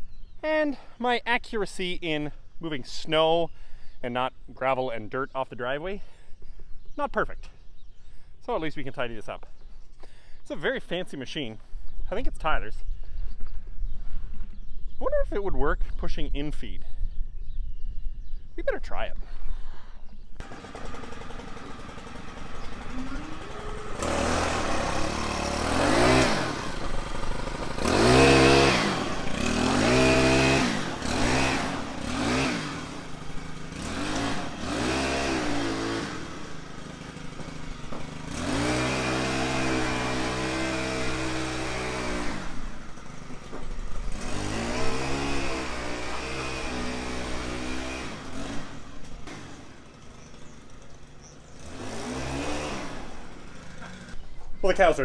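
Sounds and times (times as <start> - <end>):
small gas engine revving: 20.4 - 54.4.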